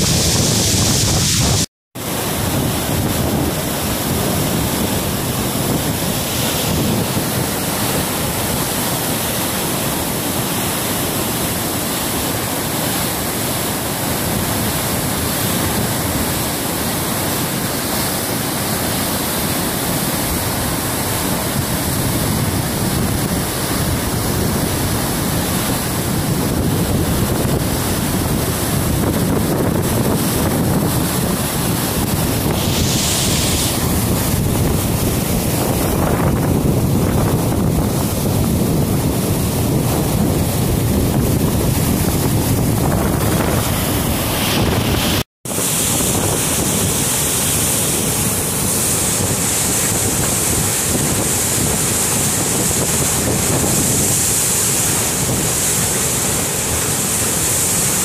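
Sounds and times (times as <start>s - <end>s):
waterfall rushing: 0.0s - 58.0s.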